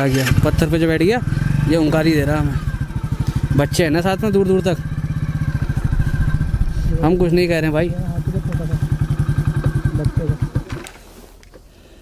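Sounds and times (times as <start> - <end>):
motorcycle engine idling: 0.0 - 10.9.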